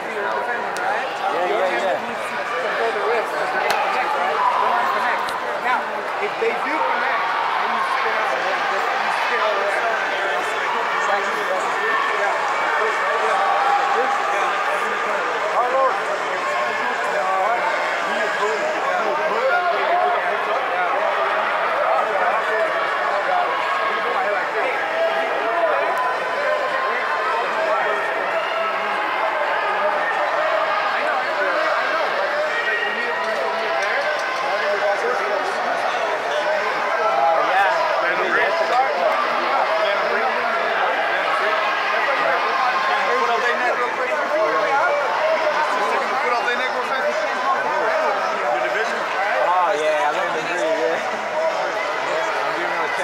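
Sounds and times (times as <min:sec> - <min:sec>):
crowd hubbub of voices: 0:00.0 - 0:53.0.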